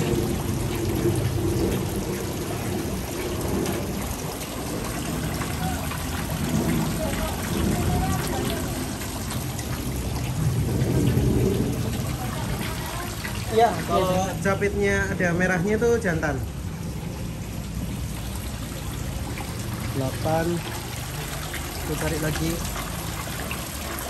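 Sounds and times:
low rumble: 0.0 - 13.5
water rushing and trickling: 0.0 - 24.0.

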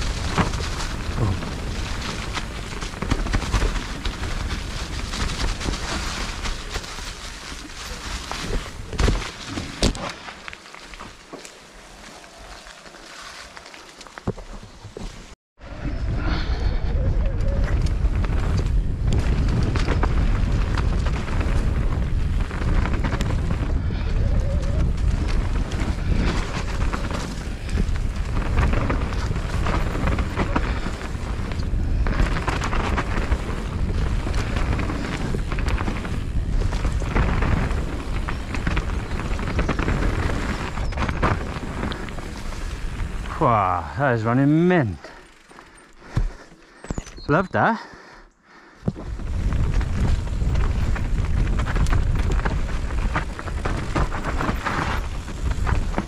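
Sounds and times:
wind buffeting microphone: 0.0 - 9.9, 15.6 - 43.5, 48.8 - 56.0
tyres rushing over dirt: 0.0 - 15.4, 17.6 - 47.9, 48.7 - 56.0.

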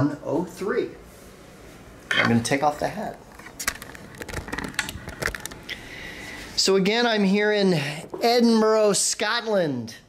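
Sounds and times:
soft rustle: 0.5 - 2.1.

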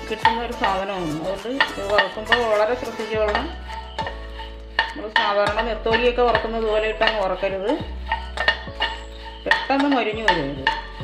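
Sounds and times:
background music: 0.0 - 11.0
spatula scraping pan: 0.0 - 11.0
spatula clicking against pan: 1.5 - 11.0.

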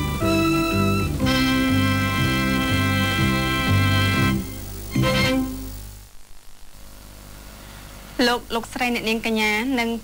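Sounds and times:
tape hiss: 0.0 - 10.0.

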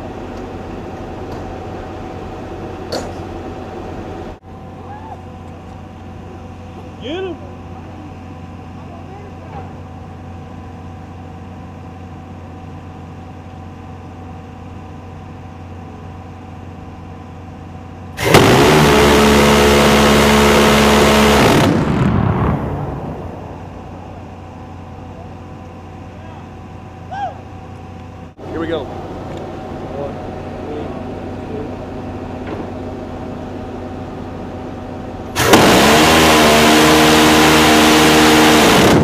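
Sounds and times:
machinery hum: 0.0 - 39.0
gatling gun burst: 18.2 - 22.6, 35.4 - 39.0.

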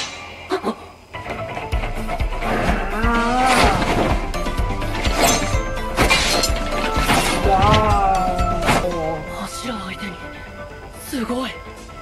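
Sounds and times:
dramatic music: 1.2 - 12.0.

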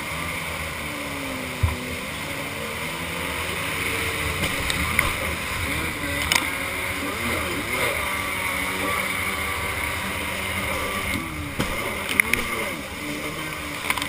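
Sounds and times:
jet ski engine revving: 0.0 - 14.0.

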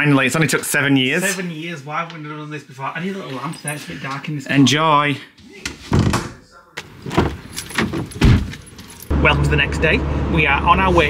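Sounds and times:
keys jangling: 7.2 - 9.1.

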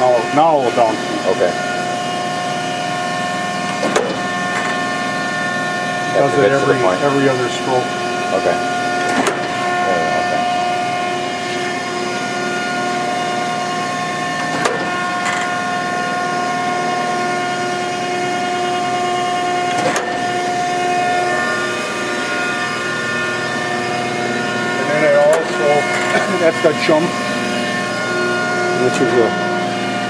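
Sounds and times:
grinder machine hum and whine: 0.0 - 30.0.

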